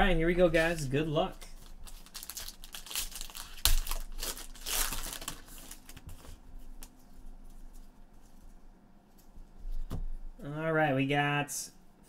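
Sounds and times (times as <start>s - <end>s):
foil wrapper tearing and crinkling: 0.6s - 6.3s.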